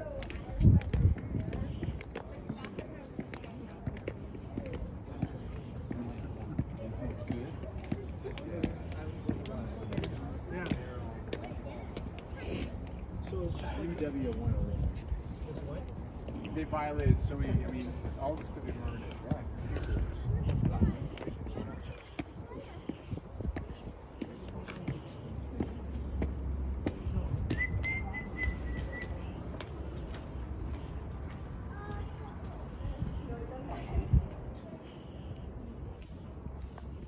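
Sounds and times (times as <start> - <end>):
people talking indistinctly: 0.0 - 37.0
high whistle: 27.5 - 29.2.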